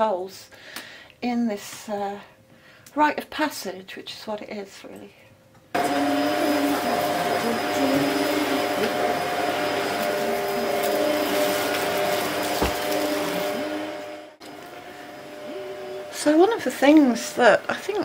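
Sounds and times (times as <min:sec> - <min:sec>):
vacuum cleaner running: 0:05.8 - 0:18.0.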